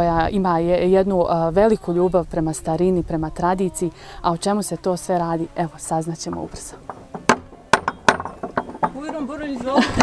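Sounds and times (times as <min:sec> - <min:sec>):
metal knocker on wooden gate: 0:06.2 - 0:10.0.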